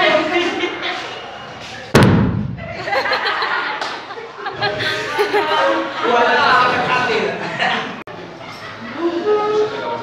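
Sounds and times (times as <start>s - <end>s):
balloon exploding with bang: 1.9s - 2.7s
short low boom: 2.0s - 2.8s.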